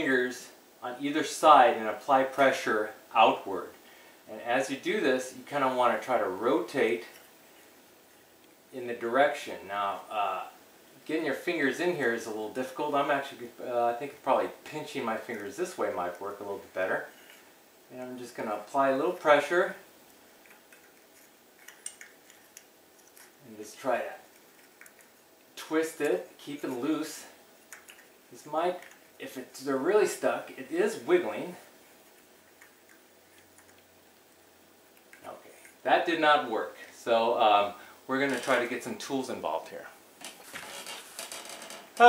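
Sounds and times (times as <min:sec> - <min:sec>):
rustling and scraping: 0:16.9 - 0:17.6, 0:20.1 - 0:23.6, 0:38.2 - 0:38.9, 0:40.2 - 0:42.0.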